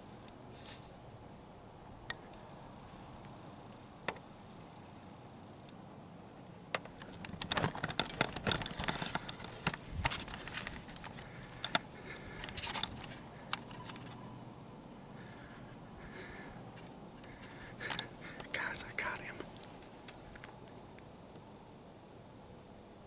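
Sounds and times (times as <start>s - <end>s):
camera and clothing handling: 6.8s - 14.2s
breathy whispered exclamations: 18.2s - 19.5s.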